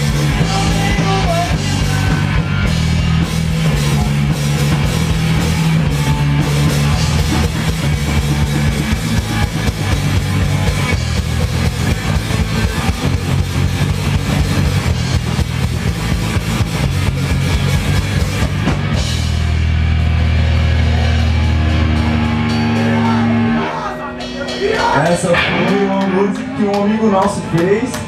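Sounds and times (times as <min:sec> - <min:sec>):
bass guitar: 0:00.0 - 0:28.0
distorted electric guitar: 0:00.0 - 0:28.0
rapid drumming: 0:00.0 - 0:28.0.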